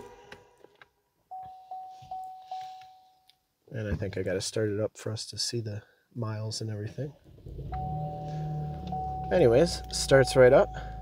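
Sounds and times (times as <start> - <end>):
car dashboard warning chime: 1.3 - 3.2, 7.7 - 11.0.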